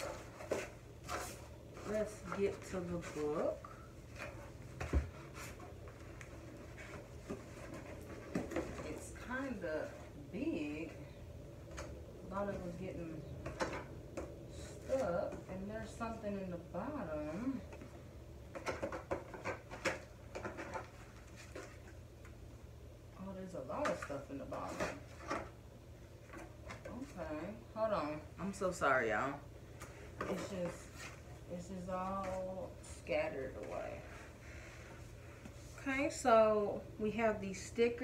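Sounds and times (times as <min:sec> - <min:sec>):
rustling while rummaging: 0:00.0 - 0:11.0, 0:14.5 - 0:22.4, 0:23.6 - 0:25.6, 0:29.6 - 0:36.3.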